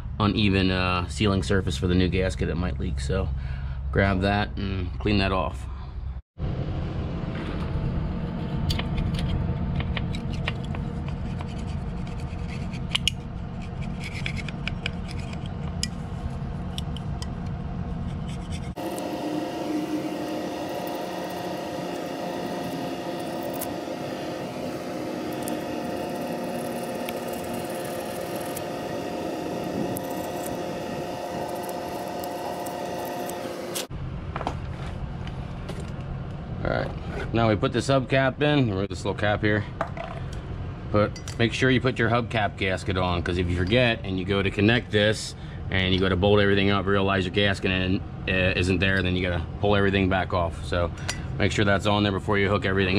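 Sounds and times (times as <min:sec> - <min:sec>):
steady hum: 0:06.4 - 0:37.5
scraper rasping on metal: 0:18.0 - 0:33.9.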